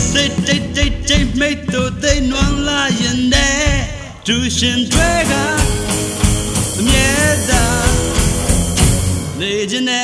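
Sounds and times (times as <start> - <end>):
steady drum beat: 0.0 - 9.6
pop-rock song with vocals: 0.0 - 10.0.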